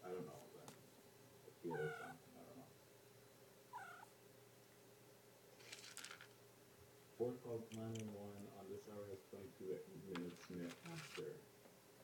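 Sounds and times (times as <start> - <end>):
cat meowing: 1.7 - 2.2, 3.7 - 4.1.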